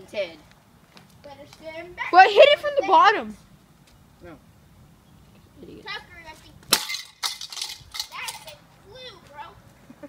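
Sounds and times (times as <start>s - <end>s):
rattling and scraping: 6.4s - 8.6s
rock striking metal bank clang: 6.7s - 8.5s.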